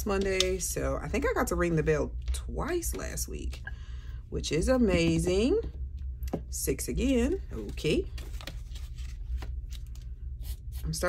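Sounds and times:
low steady hum: 0.0s - 11.0s
paper rustling: 7.6s - 10.6s.

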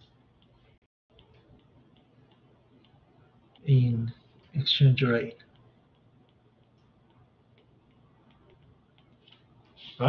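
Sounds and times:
stylus tapping tablet screen: 0.3s - 3.7s, 5.4s - 10.0s.

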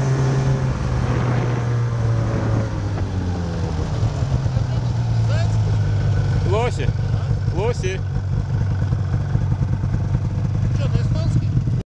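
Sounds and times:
snowmobile engine running: 0.0s - 11.8s.

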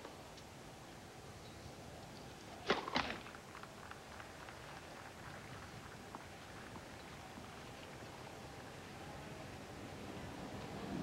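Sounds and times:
faint scattered clicks: 0.0s - 0.5s.

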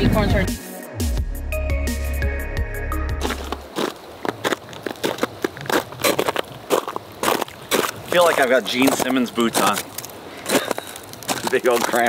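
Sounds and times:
music: 0.0s - 3.6s
crampon footsteps crunching on ice: 3.2s - 12.0s.

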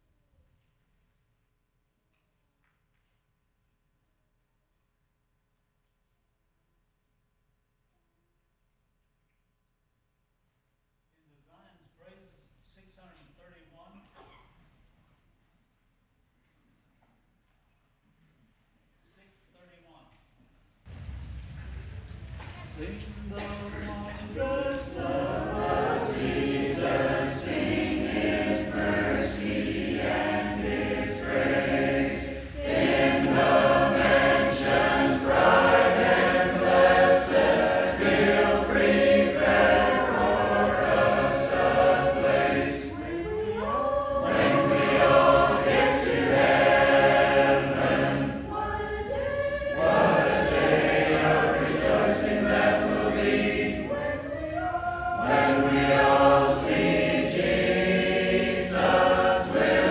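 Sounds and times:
congregation singing a hymn: 23.3s - 59.9s.

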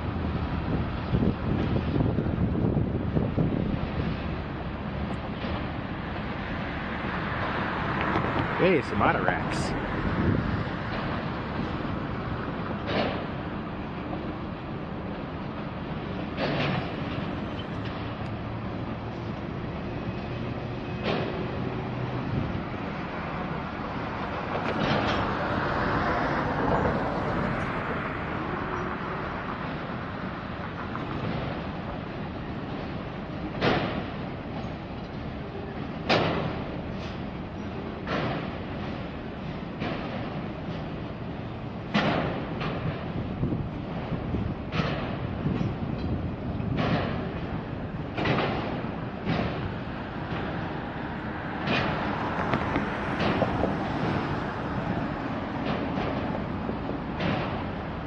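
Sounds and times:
freight train cars rumbling: 0.0s - 58.0s
sharp train clanks: 7.8s - 58.0s.

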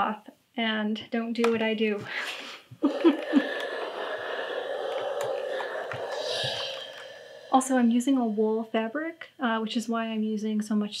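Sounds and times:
steam iron hissing: 2.1s - 8.3s.

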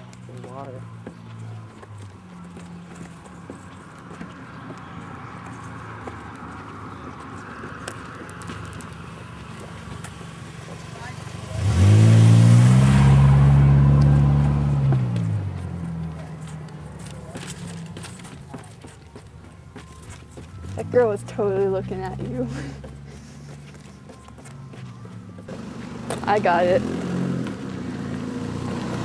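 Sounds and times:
car driving past: 4.6s - 18.3s, 25.4s - 29.0s.

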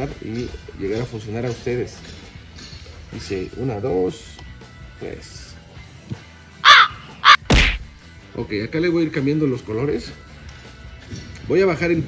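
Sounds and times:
shrill comedy cries: 6.6s - 7.5s.

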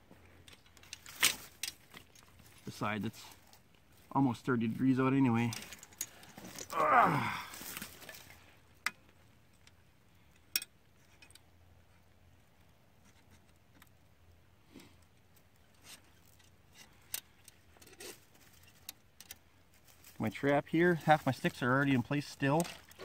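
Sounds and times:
metal trap clicks and clinks: 5.4s - 6.7s, 10.5s - 11.4s.

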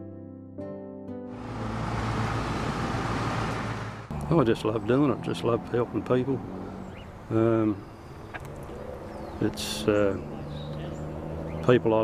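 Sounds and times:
diesel truck engine running: 1.3s - 12.0s.

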